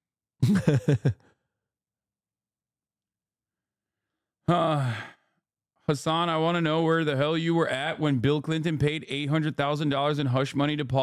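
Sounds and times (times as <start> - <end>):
short vocal sound: 4.5 - 5.2.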